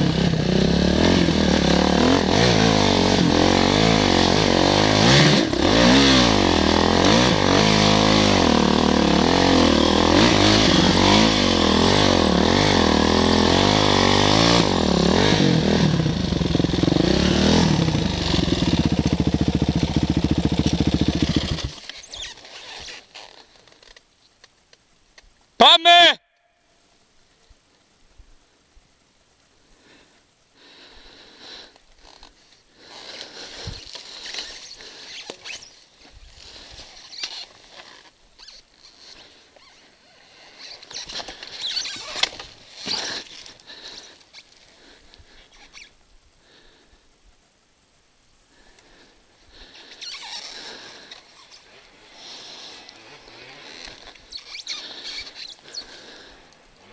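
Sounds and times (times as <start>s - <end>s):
dirt bike engine revving: 0.0s - 21.8s, 50.1s - 56.9s.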